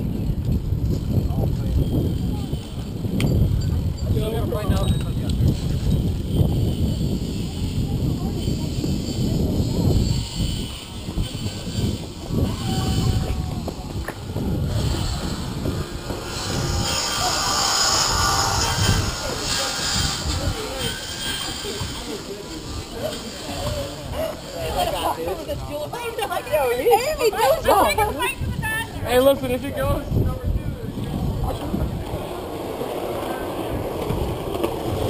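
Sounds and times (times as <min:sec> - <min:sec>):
wind buffeting microphone: 0:00.0 - 0:35.0
people's voices: 0:00.9 - 0:35.0.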